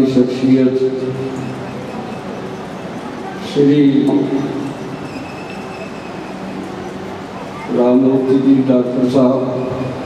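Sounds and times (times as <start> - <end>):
room and sound-system hiss: 0.0 - 10.0.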